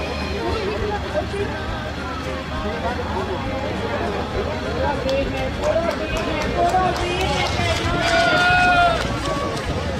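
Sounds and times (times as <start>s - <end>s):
people shouting excitedly: 7.3s - 9.5s
long drawn-out shout: 7.8s - 9.8s.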